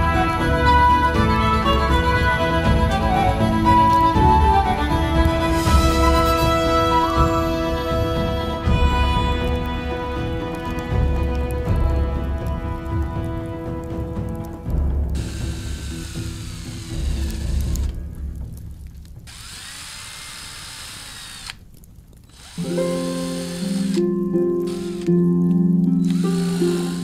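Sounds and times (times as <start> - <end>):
background music: 0.0 - 27.0
power tool motor whining: 15.2 - 18.0, 19.3 - 21.6, 22.3 - 25.2, 26.0 - 27.0.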